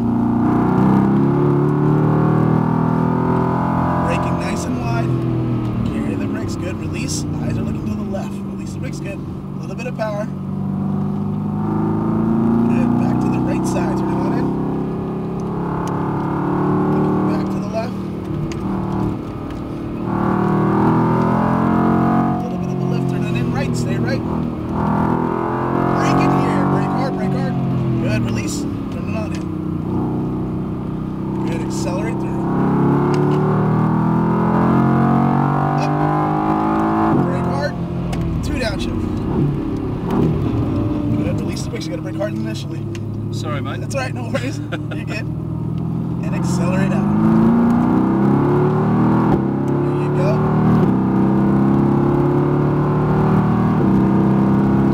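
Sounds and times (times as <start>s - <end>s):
car engine accelerating: 0.0s - 54.9s.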